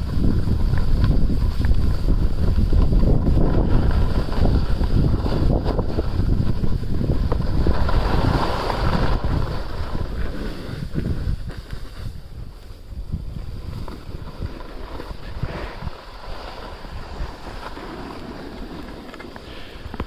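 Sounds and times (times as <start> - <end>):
skis scraping over snow: 0.0 - 20.0
wind buffeting microphone: 0.0 - 20.0.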